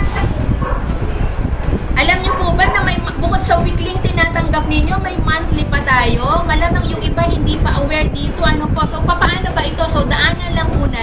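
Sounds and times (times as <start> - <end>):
low rumble of background noise: 0.0 - 11.0.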